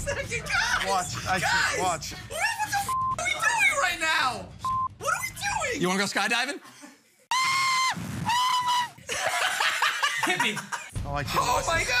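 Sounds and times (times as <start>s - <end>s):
censor bleep: 4.6s - 5.0s.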